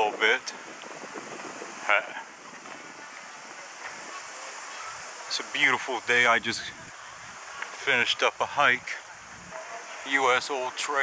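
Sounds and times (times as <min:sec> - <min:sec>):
street ambience hiss: 0:00.0 - 0:11.0.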